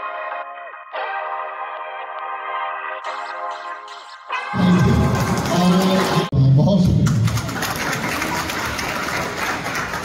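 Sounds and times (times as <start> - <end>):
audience clapping: 4.6 - 10.0.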